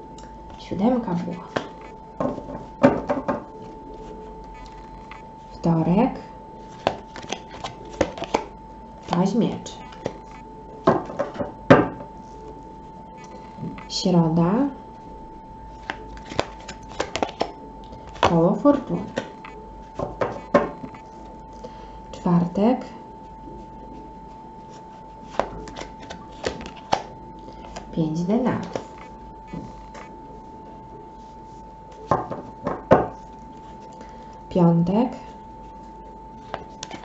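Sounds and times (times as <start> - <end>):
cards knocking on wooden table: 1.5 - 3.5, 10.8 - 12.0, 20.0 - 20.8, 32.1 - 33.1
cards clicking and snapping: 6.7 - 8.5, 15.8 - 18.3, 25.3 - 27.9.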